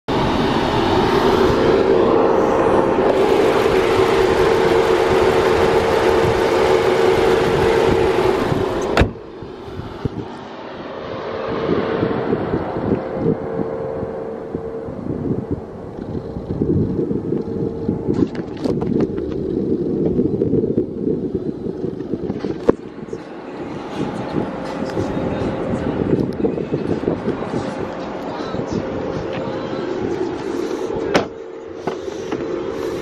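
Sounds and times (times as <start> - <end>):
car engine humming: 0.0 - 33.0.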